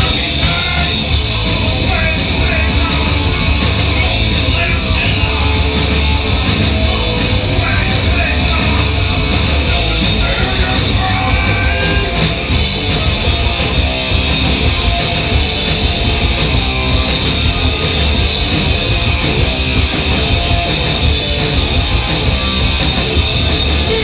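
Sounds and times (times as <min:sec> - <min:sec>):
punk rock band playing live: 0:00.0 - 0:24.0.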